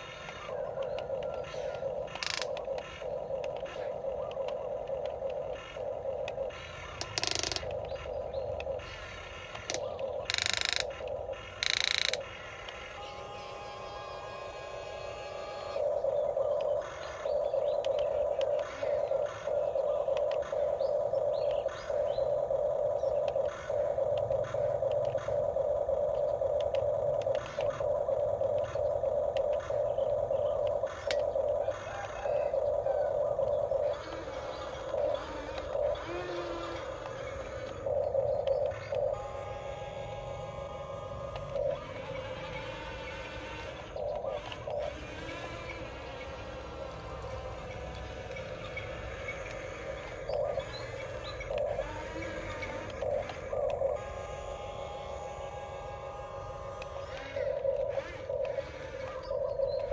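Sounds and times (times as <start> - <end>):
toy excavator motors whining: 0.0 - 59.9.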